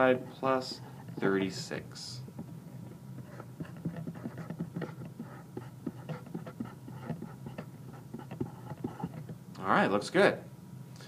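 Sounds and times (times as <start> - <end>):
low steady hum: 0.0 - 11.0
marker scratching on surface: 3.2 - 9.4.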